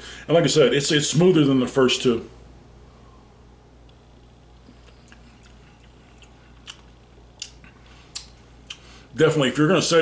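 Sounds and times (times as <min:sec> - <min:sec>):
wet mouth clicks and lip smacks: 0:04.6 - 0:08.8.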